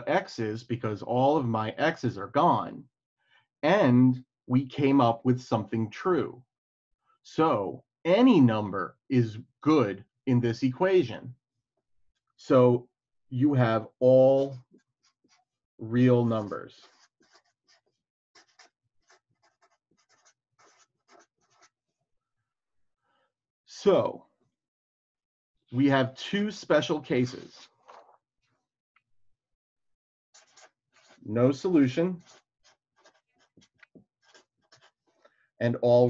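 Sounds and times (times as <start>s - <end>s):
felt-tip marker writing on paper: 14.8s - 15.6s, 16.3s - 22.0s, 30.4s - 35.2s.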